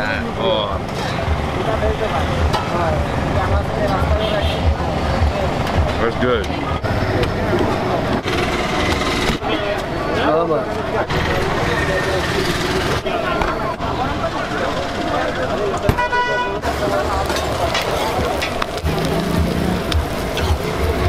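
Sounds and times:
traffic: 0.0s - 21.0s
vehicle horn tooting: 4.2s - 4.7s, 15.9s - 16.6s
background voices: 16.6s - 21.0s.

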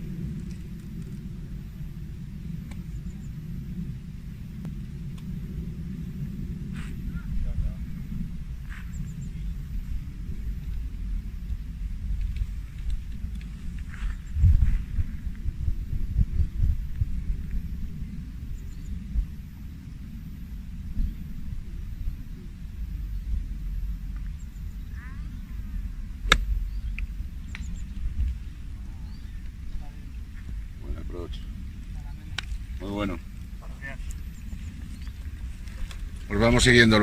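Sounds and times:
wind buffeting microphone: 0.0s - 37.0s
golf club striking ball: 26.2s - 27.1s.

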